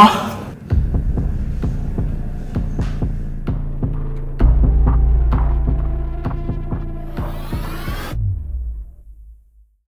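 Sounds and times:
deep bass drone: 0:00.7 - 0:09.8.

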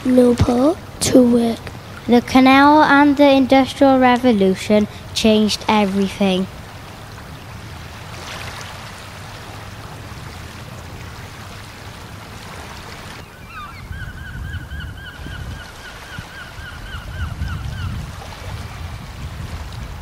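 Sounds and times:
water hiss with low rumble: 0:00.0 - 0:20.0
bird calling rapidly: 0:13.2 - 0:18.0.

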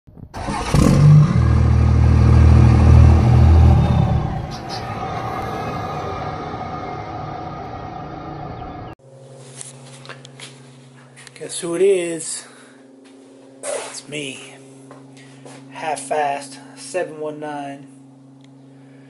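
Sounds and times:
loud engine sound effect: 0:00.4 - 0:09.0.

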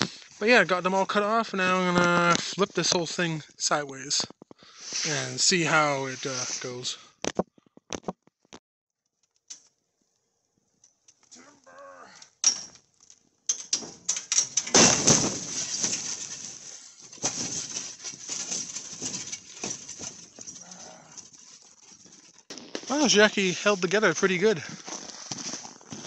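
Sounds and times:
metal frame scraping crash: 0:04.7 - 0:07.0, 0:13.6 - 0:26.0
metal frame creaking: 0:11.1 - 0:26.0
metal frame rattling: 0:12.4 - 0:25.1.

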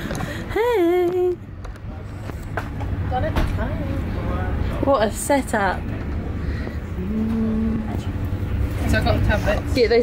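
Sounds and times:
train carriage rumble: 0:00.0 - 0:10.0
person humming a low note: 0:07.0 - 0:08.0.

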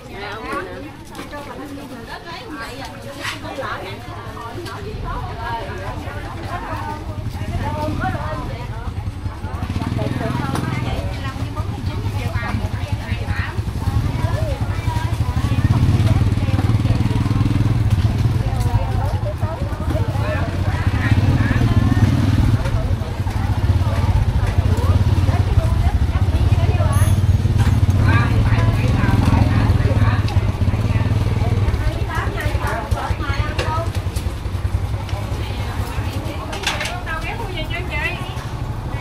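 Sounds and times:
many people talking: 0:00.0 - 0:39.0
motorbike engine running slowly: 0:00.0 - 0:39.0.

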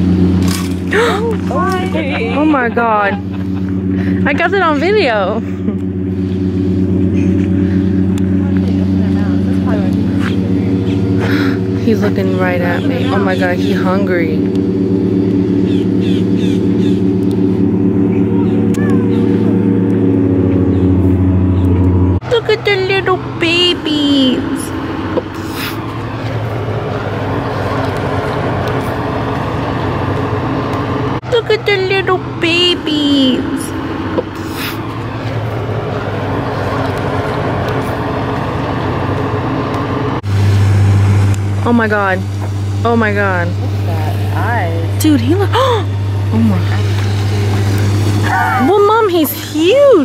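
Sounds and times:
engine drone: 0:00.0 - 0:50.0
low mechanical hum: 0:00.0 - 0:50.0
noisy background: 0:00.0 - 0:50.0.

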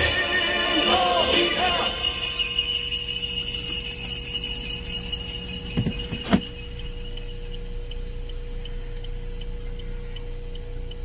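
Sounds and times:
steady hum: 0:00.0 - 0:11.0
faint ticking: 0:07.1 - 0:11.0.

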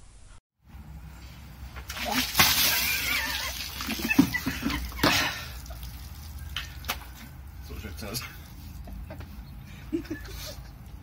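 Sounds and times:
water splashing from bucket: 0:01.8 - 0:07.1
high laughing squeal: 0:02.7 - 0:05.1.

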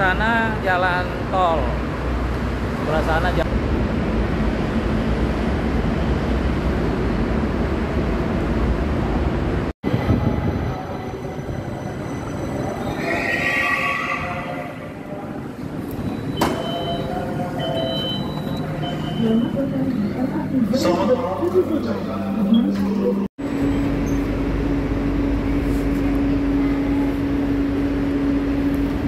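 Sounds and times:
train rumble and hiss: 0:00.0 - 0:13.1
train braking whine: 0:09.9 - 0:19.7
repeated high door beeps: 0:15.8 - 0:19.6.

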